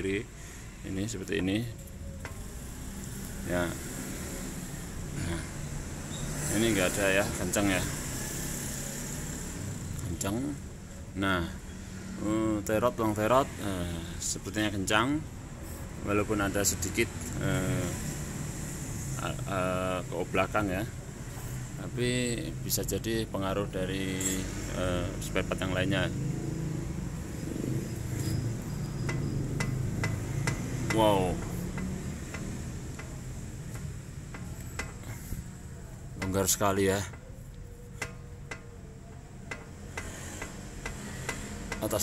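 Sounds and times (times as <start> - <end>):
sharp clicks of ball joint: 28.0 - 35.5, 36.2 - 42.0.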